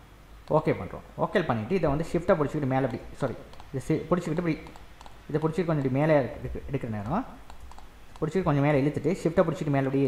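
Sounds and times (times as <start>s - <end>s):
man speaking: 0.5s - 7.4s, 8.2s - 10.0s
computer keyboard clicks: 2.9s - 3.7s, 4.6s - 6.0s, 7.0s - 8.4s.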